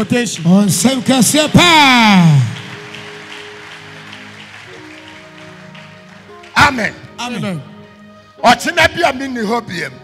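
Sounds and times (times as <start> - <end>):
hand claps: 0.0 - 7.0.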